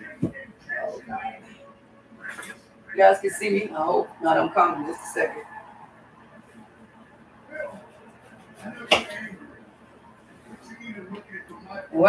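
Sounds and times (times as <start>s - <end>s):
woman's voice: 3.0s - 5.5s.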